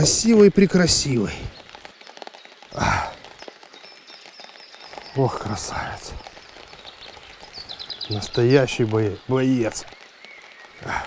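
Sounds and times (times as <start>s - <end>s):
light rain ticking: 0.0s - 11.0s.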